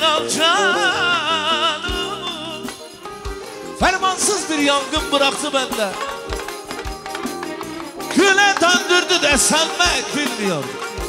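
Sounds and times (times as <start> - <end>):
drum beats: 0.0 - 11.0
folk band playing: 0.0 - 11.0.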